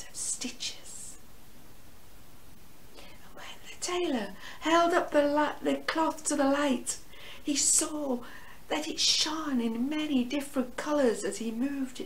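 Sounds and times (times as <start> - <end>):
woman speaking: 0.0 - 1.2, 3.2 - 12.0
faint room hiss: 0.0 - 12.0
soft intake of breath: 4.4 - 4.6, 7.0 - 7.4, 8.2 - 8.7.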